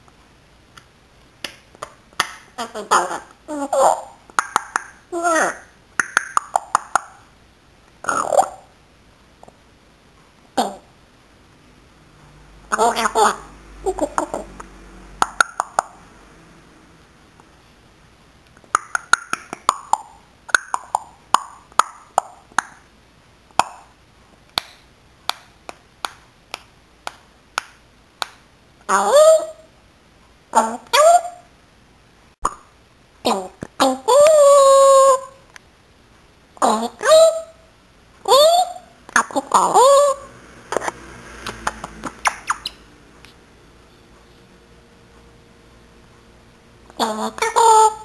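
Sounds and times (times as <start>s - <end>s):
parrot clicking and popping: 4.3s - 5.0s, 6.0s - 7.2s, 14.6s - 16.0s, 18.5s - 22.8s, 41.5s - 42.8s
parrot call with sliding pitch: 38.2s - 42.9s
parrot squeaky chirps: 41.8s - 42.9s.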